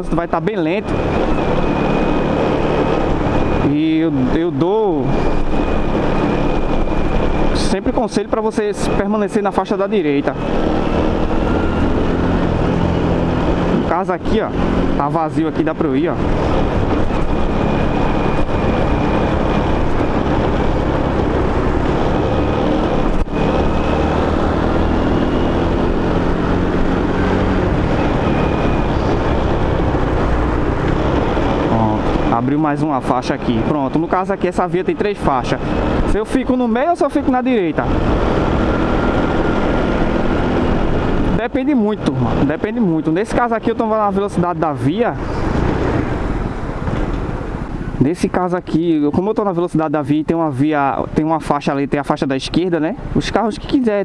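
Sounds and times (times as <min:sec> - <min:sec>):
motorcycle engine running: 0:00.0 - 0:48.0
wind rushing over microphone: 0:00.0 - 0:48.4
scooter engine running: 0:09.9 - 0:32.8.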